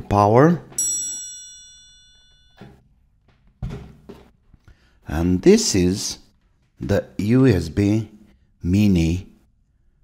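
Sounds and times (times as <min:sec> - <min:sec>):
chime: 0:00.8 - 0:02.8.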